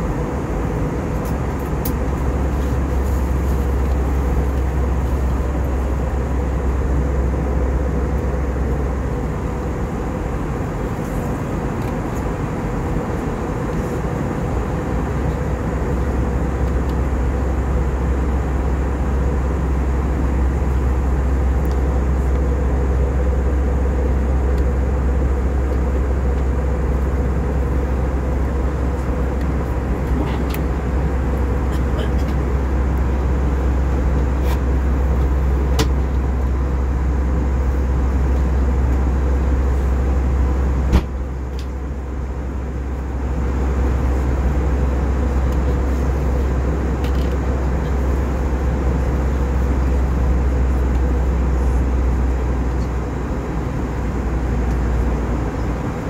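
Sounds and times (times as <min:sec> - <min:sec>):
airplane cabin engine rumble: 0:00.0 - 0:56.0
steady hum: 0:00.0 - 0:56.0.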